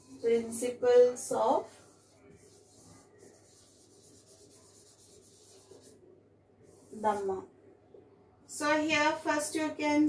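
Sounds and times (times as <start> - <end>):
marker writing on whiteboard: 0.0 - 6.0.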